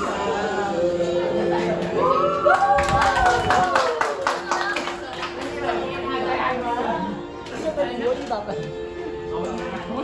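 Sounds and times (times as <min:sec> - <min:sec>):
people clapping in rhythm: 0:01.6 - 0:05.9.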